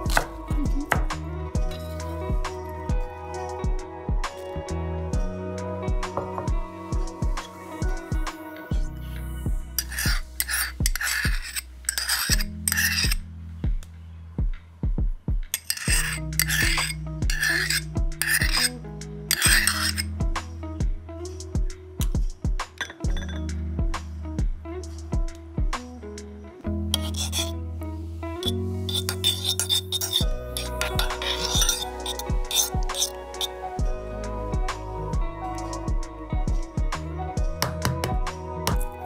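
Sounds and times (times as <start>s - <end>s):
background music with beat: 0.0s - 11.0s, 13.2s - 15.6s, 17.0s - 26.8s, 30.2s - 39.0s
spoon scraping ceramic bowl: 9.8s - 13.2s, 15.5s - 18.7s, 19.3s - 20.1s, 22.8s - 23.5s, 26.9s - 27.5s, 28.4s - 33.6s
spoon clinks: 15.6s - 18.7s, 19.3s - 20.0s, 22.8s - 23.5s, 28.4s - 33.5s.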